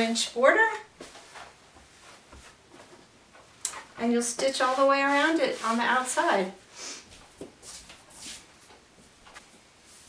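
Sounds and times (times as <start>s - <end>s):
short sharp breath: 6.7s - 7.1s.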